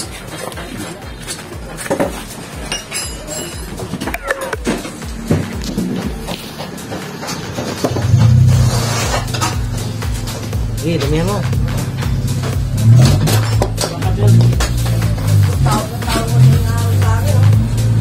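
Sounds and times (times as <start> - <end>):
steel parts clinking on concrete: 1.2 - 4.5
steady low hum: 4.5 - 18.0.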